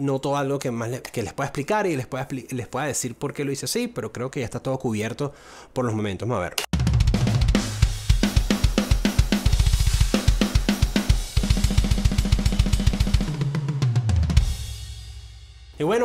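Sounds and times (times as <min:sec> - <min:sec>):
rock drum kit groove: 0:06.7 - 0:15.8
tom drum fill: 0:06.7 - 0:15.8.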